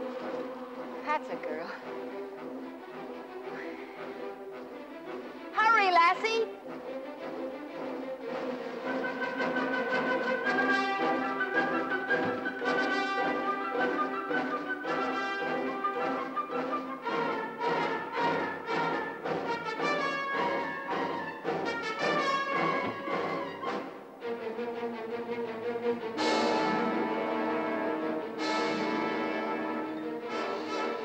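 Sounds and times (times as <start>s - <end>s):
orchestral brass music: 0.0s - 31.0s.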